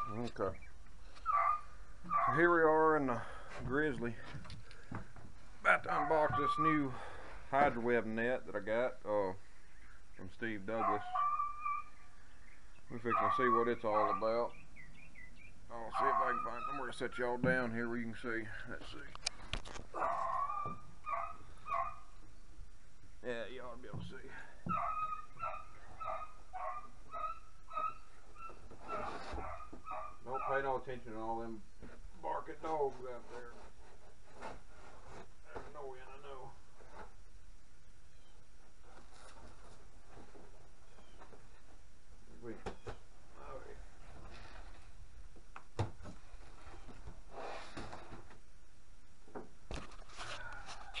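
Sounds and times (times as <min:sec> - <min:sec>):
dogs barking: 0:01.2 - 0:02.5, 0:05.9 - 0:06.8, 0:10.7 - 0:12.0, 0:13.0 - 0:14.4, 0:15.9 - 0:16.9, 0:20.0 - 0:22.1, 0:24.6 - 0:30.8
cardboard scraping rustle: 0:28.8 - 0:29.6, 0:32.6 - 0:35.8, 0:38.8 - 0:41.2, 0:44.0 - 0:45.0, 0:46.2 - 0:48.3.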